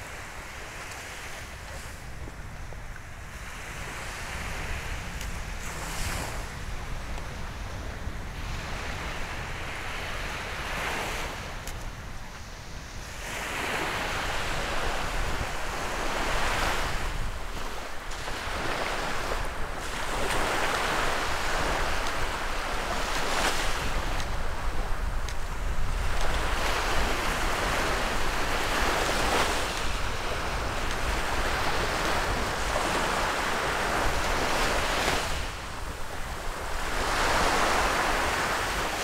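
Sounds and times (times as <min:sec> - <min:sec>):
surf washing up on sandy beach: 0:00.0 - 0:39.0.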